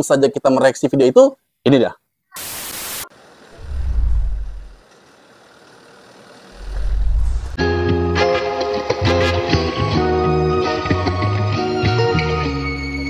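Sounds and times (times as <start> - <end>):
static hiss: 2.3 - 4.8
deep low rumbling swells: 3.6 - 4.8, 6.6 - 7.6.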